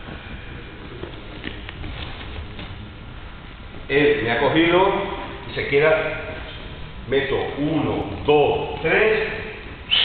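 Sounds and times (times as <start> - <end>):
gym hall background noise: 0.0 - 10.0.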